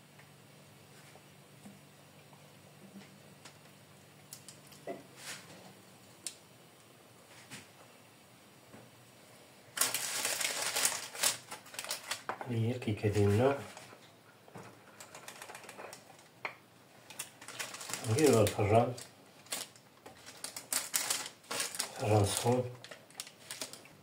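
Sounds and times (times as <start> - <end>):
parchment crinkling: 9.7 - 12.4, 13.0 - 16.4, 17.0 - 24.0
handling sounds: 9.8 - 12.4, 17.1 - 23.8.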